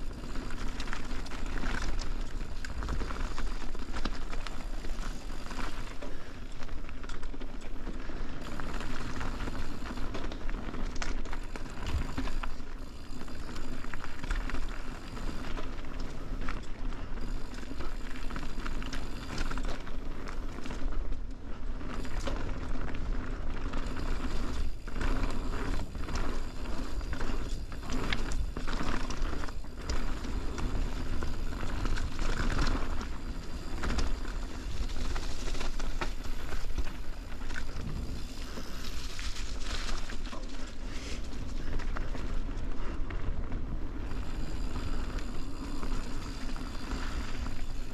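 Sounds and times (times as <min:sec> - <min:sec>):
bike rattling over bumps: 0:00.0 - 0:47.9
bike tyres on dirt and leaves: 0:00.0 - 0:47.9.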